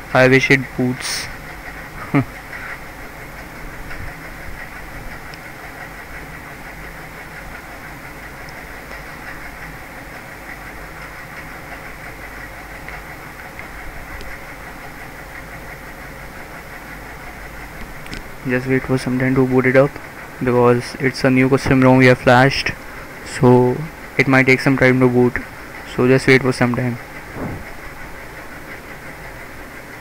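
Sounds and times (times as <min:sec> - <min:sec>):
brief falling sound: 0:27.4 - 0:27.8.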